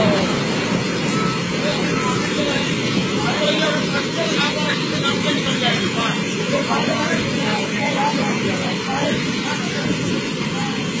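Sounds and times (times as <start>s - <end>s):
roar of rushing torrent water: 0.0s - 11.0s.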